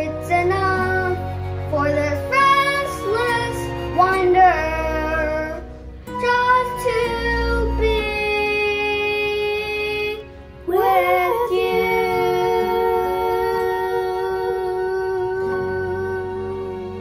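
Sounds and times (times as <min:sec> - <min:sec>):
child singing: 0:00.0 - 0:05.6, 0:06.2 - 0:17.0
instrumental backing track: 0:00.0 - 0:17.0.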